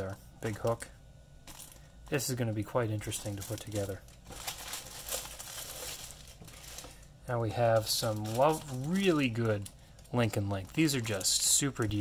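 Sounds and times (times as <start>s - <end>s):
plastic bag crinkling: 1.4s - 12.0s.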